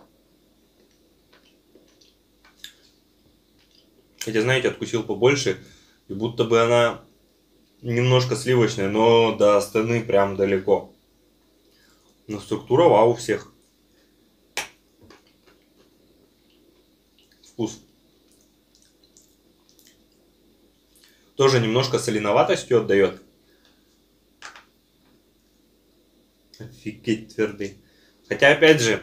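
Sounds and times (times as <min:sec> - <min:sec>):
faint chewing crunches: 0:00.8 - 0:04.3, 0:18.2 - 0:21.2.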